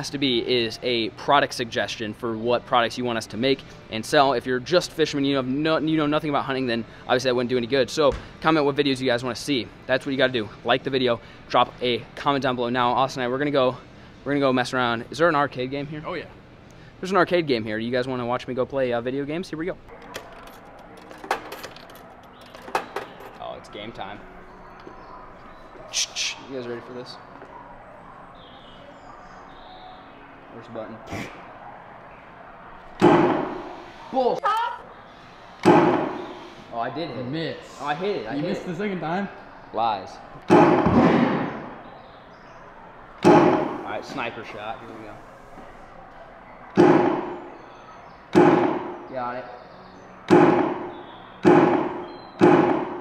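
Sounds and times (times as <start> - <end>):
tokens dropping into coin slot: 19.9 - 23.4
gunshot sound effect: 33.0 - 33.8, 35.6 - 36.5, 40.5 - 41.8, 43.2 - 43.9, 46.8 - 47.4, 48.4 - 49.0, 50.3 - 53.0.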